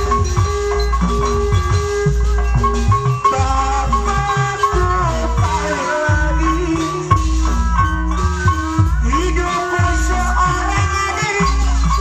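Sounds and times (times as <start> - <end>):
loud live band music: 0.0 - 12.0.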